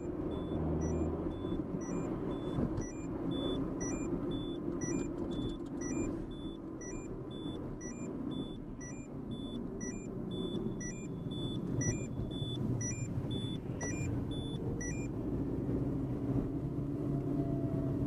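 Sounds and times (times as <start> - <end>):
car engine and road noise: 0.0 - 18.0
seatbelt warning chime beeps: 0.3 - 15.1.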